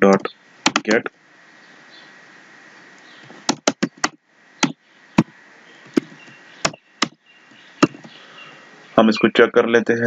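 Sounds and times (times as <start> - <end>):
faint background hiss: 0.0 - 10.0
computer keyboard keys clicking: 0.1 - 0.9, 3.5 - 4.8.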